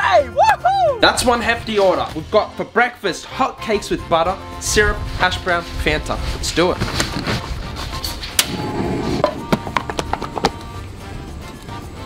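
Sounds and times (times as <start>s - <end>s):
background music: 0.0s - 12.0s
gas hob igniter clicking: 8.4s - 8.8s.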